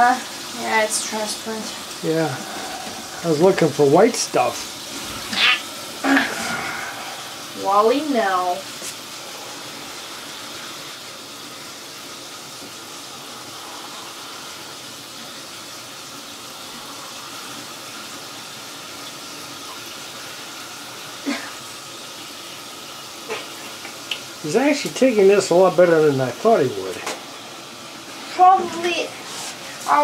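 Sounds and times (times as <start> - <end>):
shower water running: 0.0 - 30.0.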